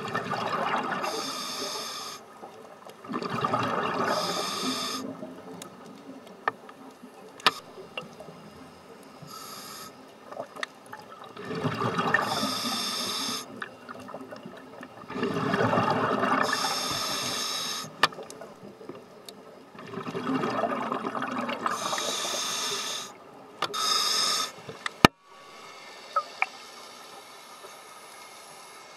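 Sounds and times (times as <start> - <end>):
diver exhaling bubbles: 19.9 - 22.3.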